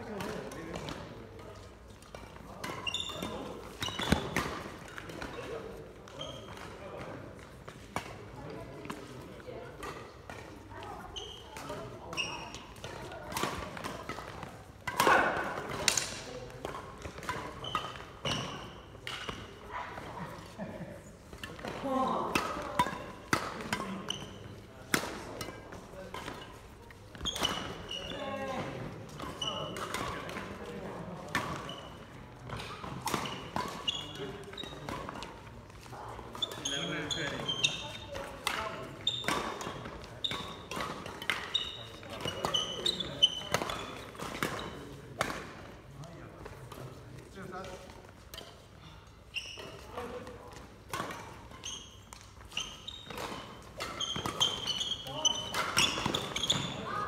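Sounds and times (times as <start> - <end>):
players' voices: 0.0 - 51.3, 52.2 - 57.0
racket striking shuttlecock: 12.8 - 19.6, 50.9 - 56.8.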